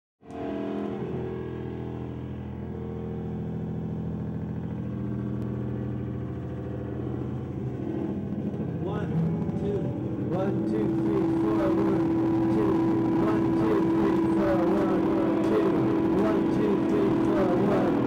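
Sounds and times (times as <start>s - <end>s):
rock band droning: 0.3s - 18.0s
voices: 8.7s - 18.0s.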